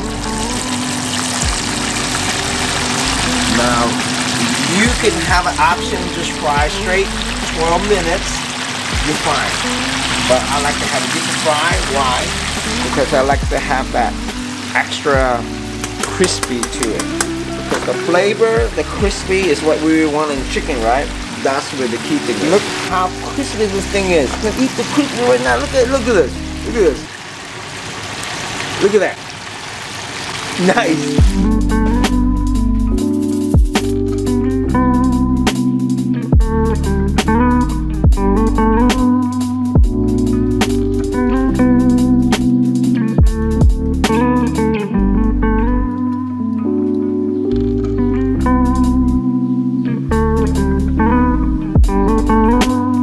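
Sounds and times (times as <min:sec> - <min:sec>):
oil sizzling and bubbling: 0:00.0 - 0:31.4
man's voice: 0:03.2 - 0:08.4, 0:09.0 - 0:27.1, 0:30.6 - 0:32.3.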